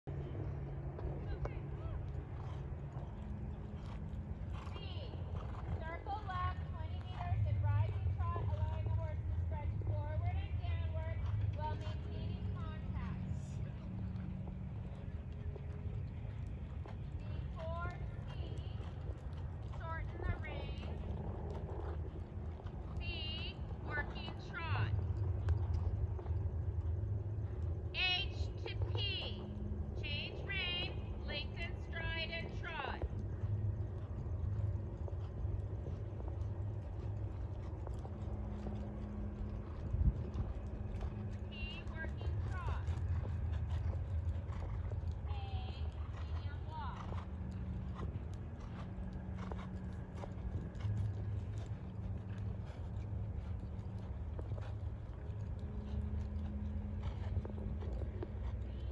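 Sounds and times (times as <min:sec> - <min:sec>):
steady low rumble: 0:00.0 - 0:58.9
horse hoofbeats on sand: 0:00.8 - 0:58.9.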